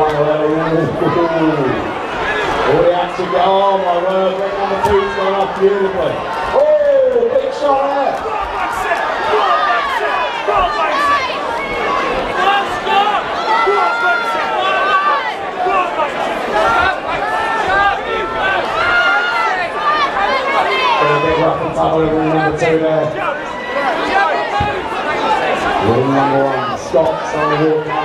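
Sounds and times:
crowd talking and calling out: 0.0 - 28.0.

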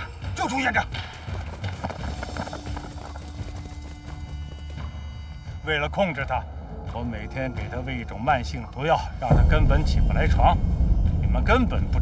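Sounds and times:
background music: 0.0 - 12.0
footsteps running on dirt: 0.5 - 5.4.

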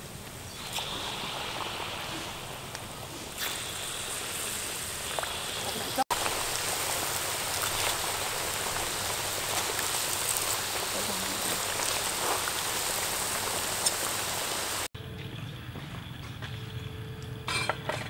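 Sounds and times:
hot oil sizzling: 0.0 - 14.9
oil popping: 0.5 - 14.9.

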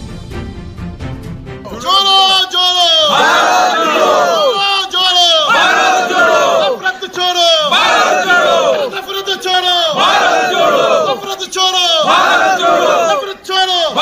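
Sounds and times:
men chanting in unison: 2.9 - 4.6, 5.3 - 9.1, 9.8 - 14.0.

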